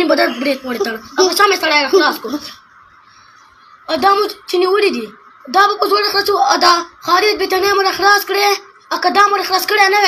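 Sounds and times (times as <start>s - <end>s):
boy talking: 0.0s - 2.7s, 3.9s - 10.0s.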